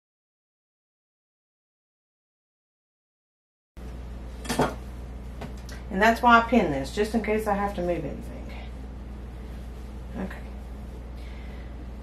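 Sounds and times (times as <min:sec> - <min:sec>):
steady low hum: 0:03.8 - 0:12.0.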